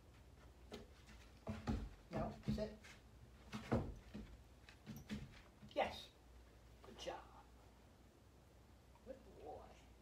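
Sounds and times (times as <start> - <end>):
paws knocking on wood: 0.7 - 5.7.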